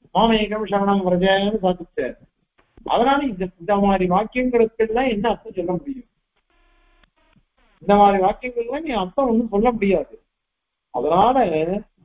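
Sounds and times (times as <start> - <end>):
man speaking: 0.2 - 2.2, 2.8 - 6.0, 7.8 - 10.2, 11.0 - 11.8
short electronic blips: 6.4 - 7.9
faint electronic tone: 6.4 - 8.4.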